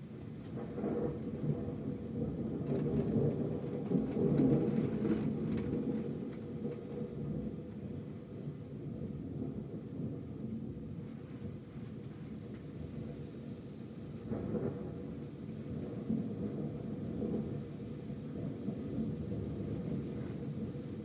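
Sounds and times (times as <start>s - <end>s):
rolling thunder: 0.0s - 13.3s, 14.0s - 21.0s
steady rain: 0.0s - 21.0s.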